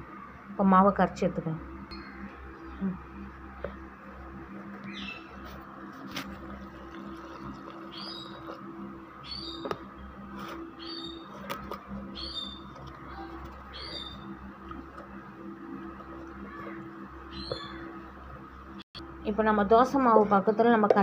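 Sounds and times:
steady low hum: 0.0 - 21.0
bird chirping: 1.7 - 5.6, 6.4 - 18.1.

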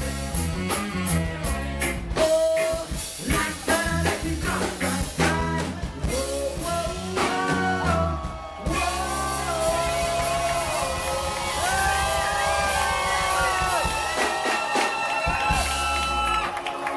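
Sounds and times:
live rock band playing: 0.0 - 16.9
person singing: 2.2 - 12.7.

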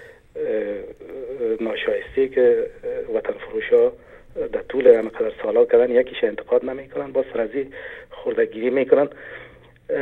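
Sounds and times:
person talking over telephone line: 0.4 - 9.0.

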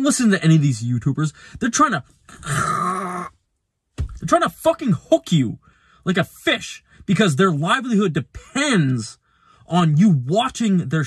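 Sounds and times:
man's raspy growl: 2.3 - 3.3.

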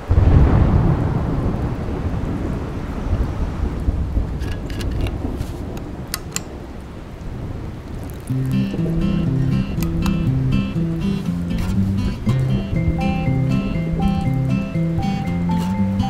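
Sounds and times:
deep rumble: 0.0 - 15.1
thermos cap clicking: 4.4 - 6.5, 8.0 - 10.4.

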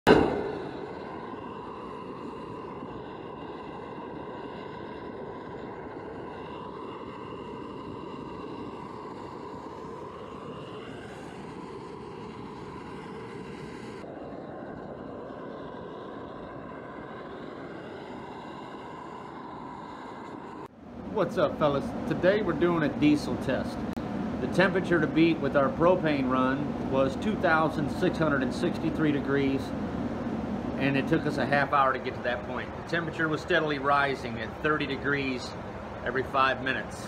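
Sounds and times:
burner rushing noise: 0.0 - 37.0
faint steady whine: 0.1 - 37.0.

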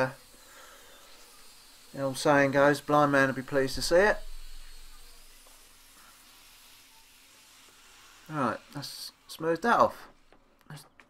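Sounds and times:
angle grinder hiss: 0.0 - 10.3
man speaking: 2.0 - 4.3.

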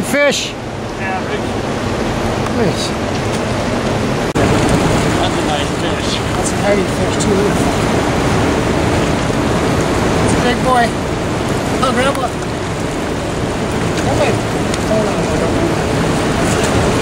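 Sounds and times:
river water flowing: 0.0 - 17.0
wind on microphone: 0.6 - 17.0.

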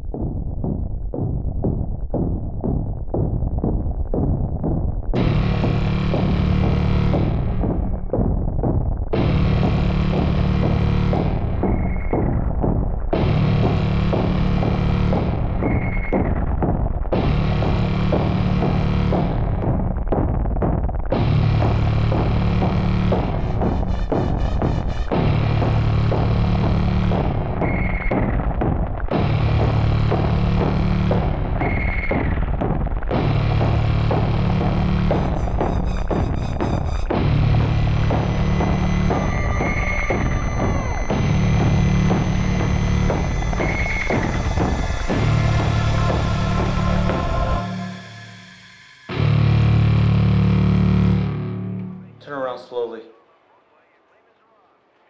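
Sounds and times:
dark distorted synth music: 0.0 - 52.5
short high synth tone: 45.2 - 49.8.

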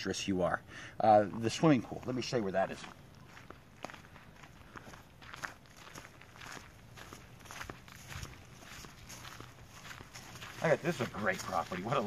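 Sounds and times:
footsteps on dry leaves: 1.9 - 12.0.

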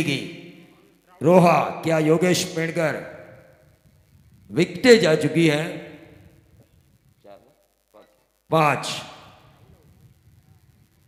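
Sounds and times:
man commentating: 0.0 - 3.4, 4.5 - 6.2, 7.2 - 9.9.

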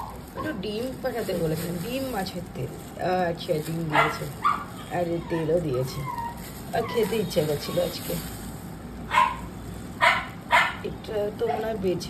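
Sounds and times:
dog barking: 3.9 - 5.5, 9.1 - 10.9.

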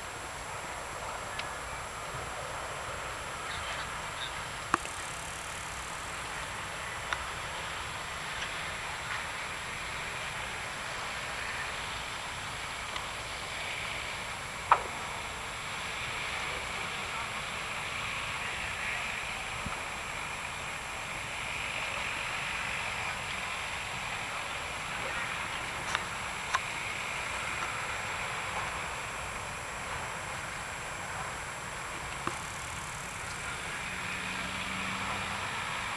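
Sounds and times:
distant fire burning: 0.0 - 35.9.

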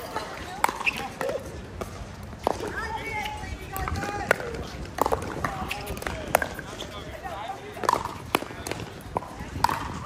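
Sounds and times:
people talking: 0.0 - 1.6, 2.5 - 10.0
paddles hitting plastic ball: 3.8 - 6.8, 7.8 - 10.0.

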